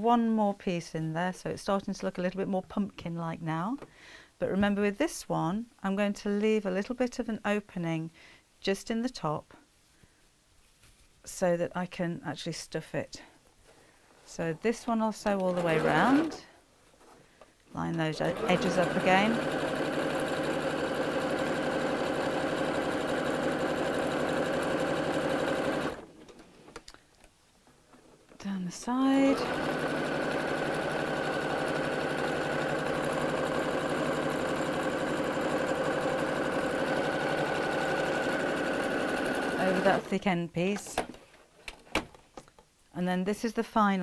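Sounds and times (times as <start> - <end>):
sewing machine running: 15.3 - 16.4, 18.1 - 26.1, 29.2 - 40.1.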